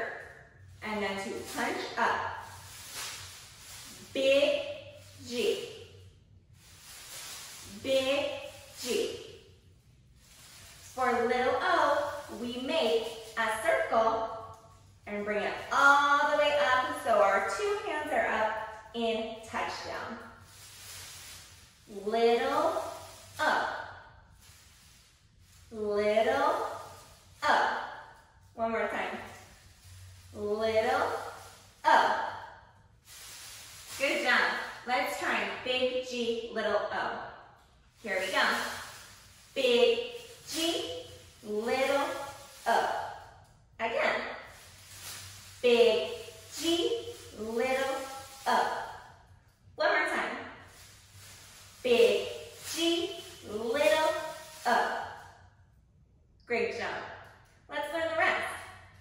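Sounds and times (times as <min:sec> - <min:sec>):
woman speaking: 0:00.0 - 0:00.2, 0:00.8 - 0:02.2, 0:04.0 - 0:04.6, 0:05.2 - 0:05.7, 0:07.7 - 0:09.2, 0:10.9 - 0:14.3, 0:15.1 - 0:20.2, 0:21.9 - 0:23.8, 0:25.7 - 0:26.7, 0:27.4 - 0:27.8, 0:28.6 - 0:29.4, 0:30.4 - 0:31.2, 0:31.8 - 0:32.3, 0:34.0 - 0:37.2, 0:38.0 - 0:38.8, 0:39.5 - 0:43.1, 0:43.8 - 0:44.3, 0:45.6 - 0:48.8, 0:49.8 - 0:50.4, 0:51.8 - 0:55.0, 0:56.5 - 0:57.1, 0:57.7 - 0:58.7.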